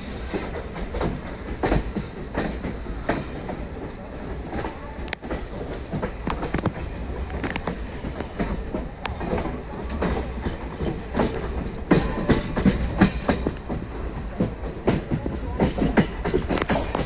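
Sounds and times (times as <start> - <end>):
train rumble: 0.0 - 17.0
train wheels clattering over rails: 0.0 - 17.0.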